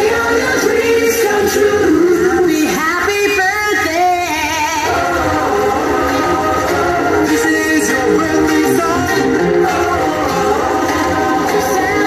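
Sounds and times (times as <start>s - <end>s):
loud held chord of steady tones: 0.0s - 12.0s.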